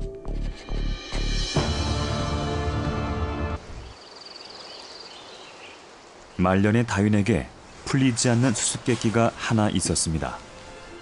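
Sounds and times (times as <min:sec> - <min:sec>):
faint background hiss: 0:03.6 - 0:11.0.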